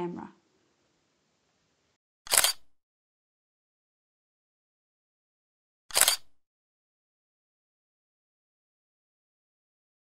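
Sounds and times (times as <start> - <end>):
camera shutter double click: 2.3 - 2.8, 5.9 - 6.4.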